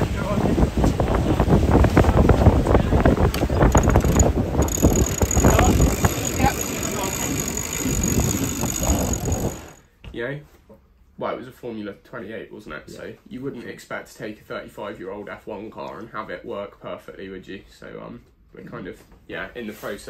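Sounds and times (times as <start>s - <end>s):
wind buffeting microphone: 0.0s - 9.7s
small rattles and clicks: 3.3s - 9.8s.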